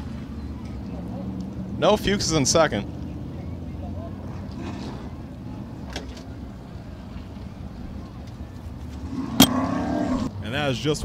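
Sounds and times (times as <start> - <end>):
race car engines idling: 0.0 - 9.4.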